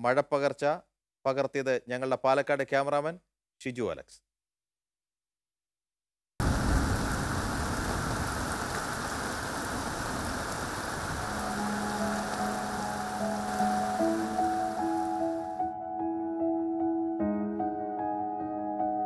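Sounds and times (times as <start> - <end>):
heavy rain pouring: 6.4 - 15.6
soft background music: 11.2 - 19.0.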